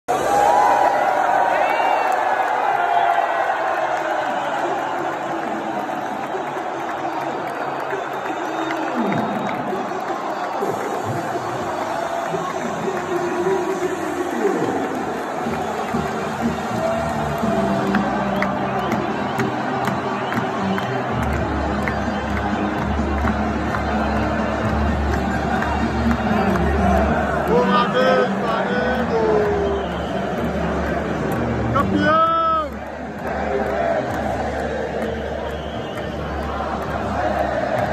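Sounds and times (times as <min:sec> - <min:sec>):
stadium crowd cheering and singing: 0:00.0 - 0:37.9
music playing: 0:03.5 - 0:37.9.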